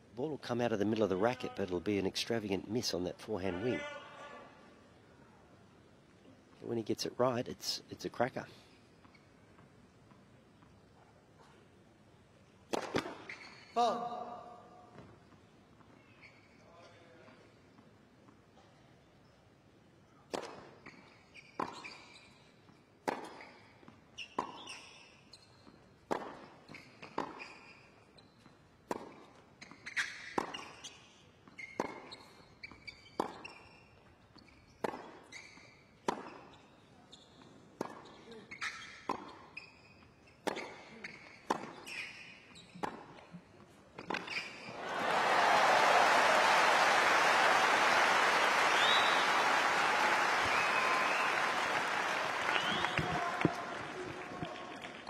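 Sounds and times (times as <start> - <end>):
crowd applauding and cheering: 44.7 - 55.0.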